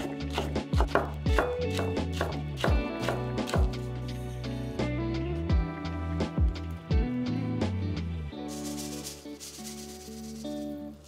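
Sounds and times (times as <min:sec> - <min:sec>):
guitar music: 0:00.0 - 0:11.0
sesame seeds poured into bowl: 0:08.4 - 0:11.0.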